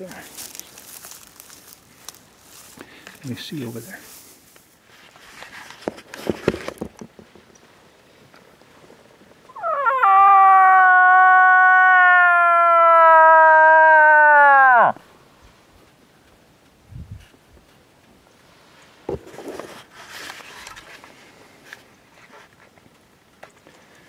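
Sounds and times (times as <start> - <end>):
person making moose call: 9.5 - 15.0.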